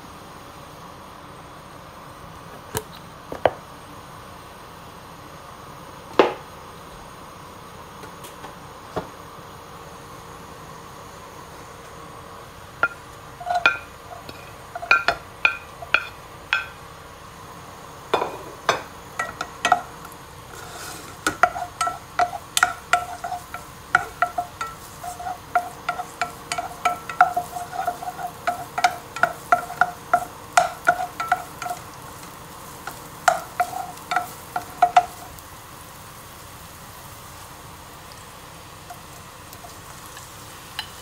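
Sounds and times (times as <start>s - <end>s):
faint frying sizzle: 0.0s - 41.0s
wooden spatula knocking a pan: 12.8s - 16.8s, 18.2s - 20.0s, 21.1s - 35.3s.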